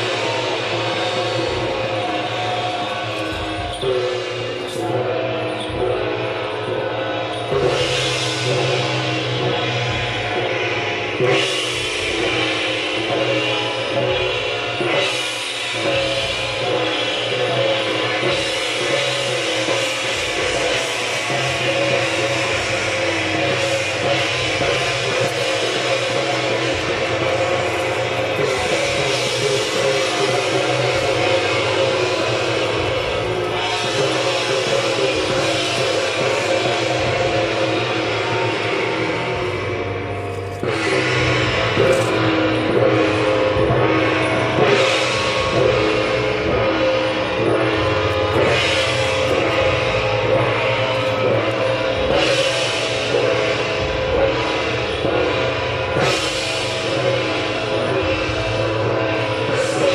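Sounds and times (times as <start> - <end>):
gongs drum and cymbals playing: 0.0 - 59.9.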